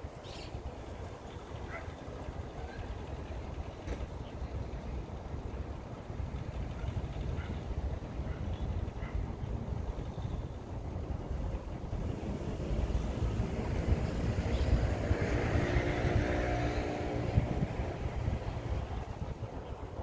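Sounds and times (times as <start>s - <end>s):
wind rumbling on microphone: 0.0s - 20.0s
motor engine passing by: 11.8s - 19.4s.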